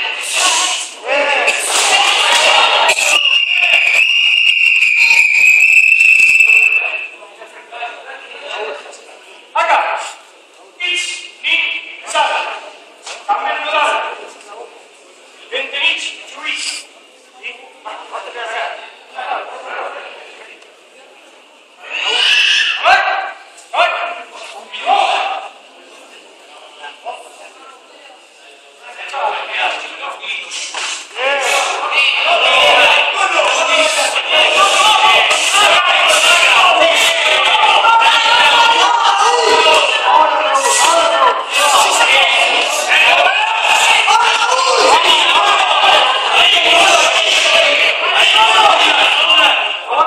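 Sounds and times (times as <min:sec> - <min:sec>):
spectators shouting: 0:00.0 - 0:06.6, 0:31.2 - 0:50.0.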